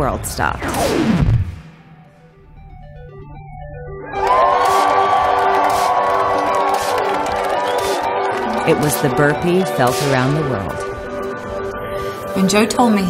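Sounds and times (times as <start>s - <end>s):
soundtrack music: 0.4s - 13.0s
crowd cheering and yelling: 4.0s - 10.8s.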